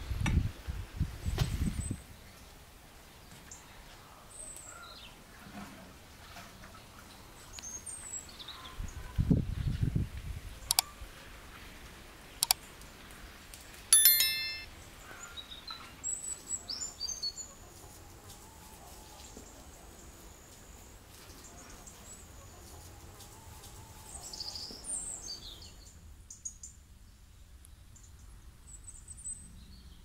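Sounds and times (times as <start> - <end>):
bright ding: 14.0 - 14.7.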